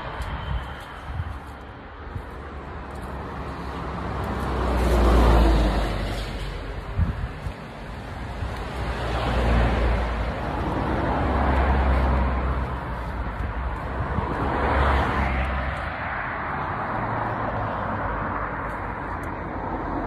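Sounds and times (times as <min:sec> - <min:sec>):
wind buffeting microphone: 0:00.0 - 0:19.9.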